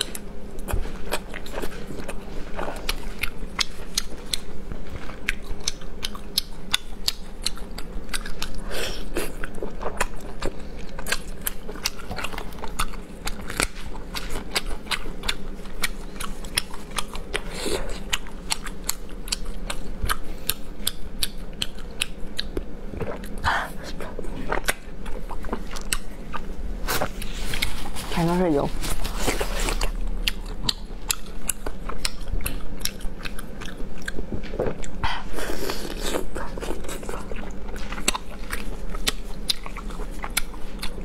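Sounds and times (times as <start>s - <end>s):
close chewing with wet mouth clicks: 0.0s - 26.5s, 29.0s - 41.0s.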